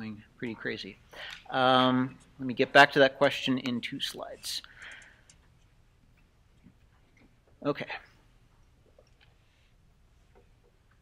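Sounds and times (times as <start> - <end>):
faint clicks: 4.6 - 7.6, 8.9 - 9.4.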